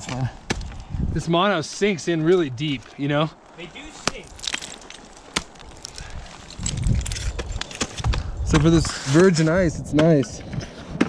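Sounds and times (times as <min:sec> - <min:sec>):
ice tools chopping into ice: 0:04.0 - 0:08.0.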